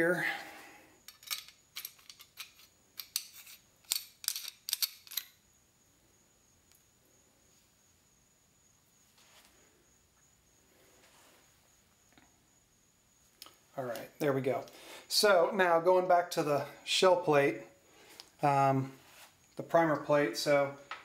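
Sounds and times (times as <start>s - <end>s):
room hiss: 0.0s - 21.0s
metal parts clicking and clinking: 1.1s - 5.4s.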